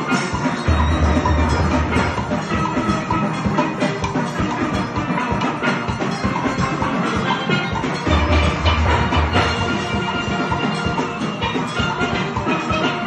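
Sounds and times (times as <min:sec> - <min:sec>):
steel band playing: 0:00.0 - 0:13.0.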